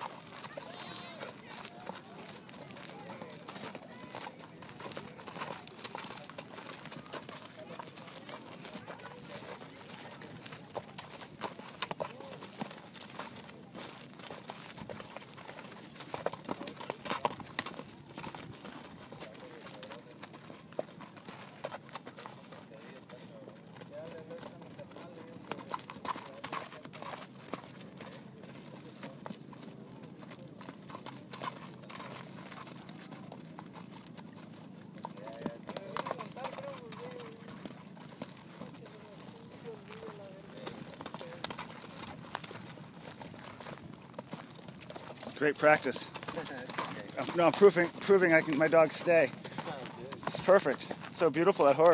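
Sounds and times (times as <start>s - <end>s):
faint voices: 0.0s - 44.0s
horse hooves on hard dirt: 0.0s - 51.9s.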